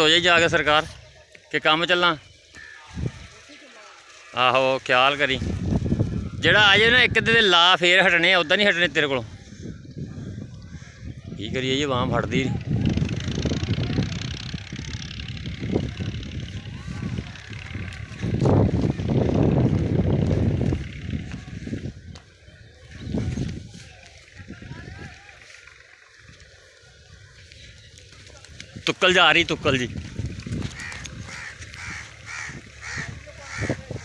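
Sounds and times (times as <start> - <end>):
distant indistinct voices: 12.3 - 19.4, 30.8 - 34.0
crow cawing: 30.7 - 34.0.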